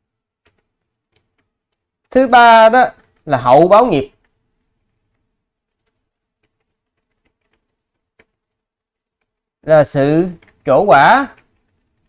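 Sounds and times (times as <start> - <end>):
computer keyboard keystrokes: 0.4 - 2.2, 2.9 - 3.3, 4.1 - 9.6, 10.2 - 12.0.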